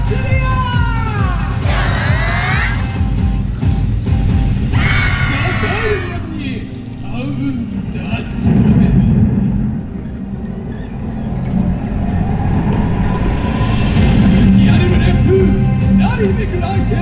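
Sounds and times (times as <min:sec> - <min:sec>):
dance music over outdoor loudspeakers: 0:00.0 - 0:04.2
voices calling: 0:00.0 - 0:08.6
slowly rising tone: 0:09.5 - 0:14.6.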